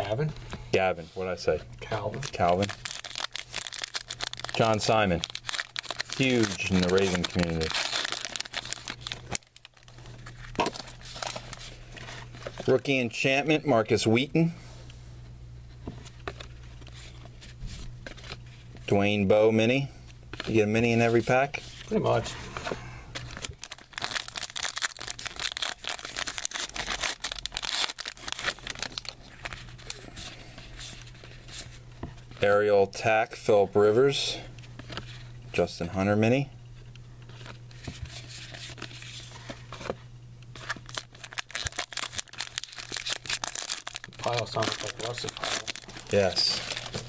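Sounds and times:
low steady hum: 0.0 - 47.0
cards rustling: 1.5 - 12.8, 16.0 - 32.4, 37.2 - 47.0
wrapper tearing and crinkling: 2.2 - 11.6, 23.2 - 30.1, 40.6 - 47.0.

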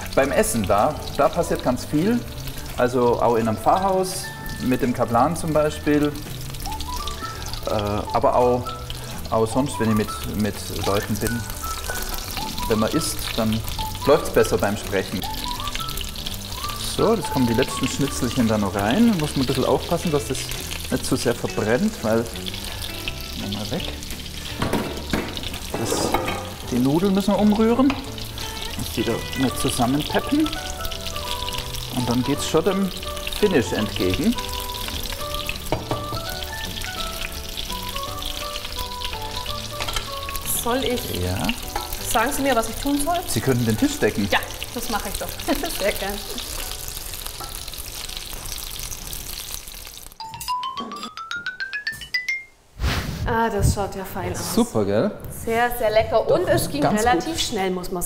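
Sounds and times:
cutlets sizzling in a pan: 0.0 - 50.2
knocks on pan: 24.6 - 26.6, 35.7 - 36.3
rising mallet instrument notes: 50.2 - 52.6.

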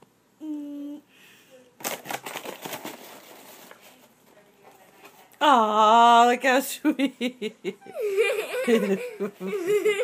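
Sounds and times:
person humming: 0.4 - 1.1.

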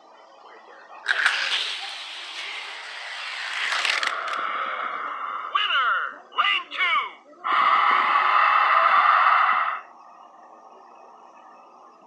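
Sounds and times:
person hissing: 7.5 - 9.8.

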